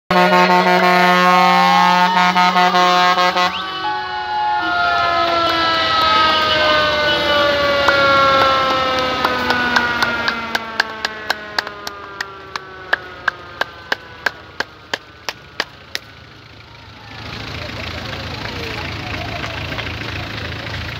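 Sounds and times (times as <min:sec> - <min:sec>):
fire truck siren winding down: 0:00.1 - 0:20.4.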